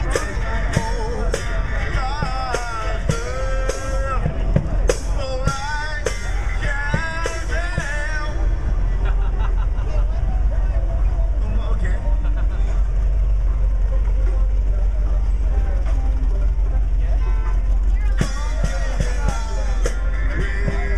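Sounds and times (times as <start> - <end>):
person singing: 0.0 - 8.6, 18.2 - 20.9
crowd voices: 0.0 - 20.9
low traffic rumble: 0.0 - 20.9.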